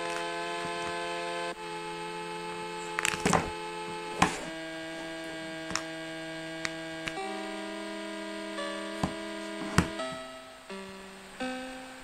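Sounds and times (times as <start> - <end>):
background music chords: 0.0 - 12.0
plastic clicks and taps: 5.6 - 5.9.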